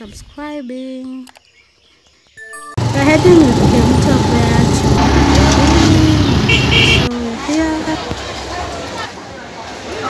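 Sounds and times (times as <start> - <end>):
motorcycle engine rumble: 2.8 - 9.0
people's voices: 2.8 - 10.0.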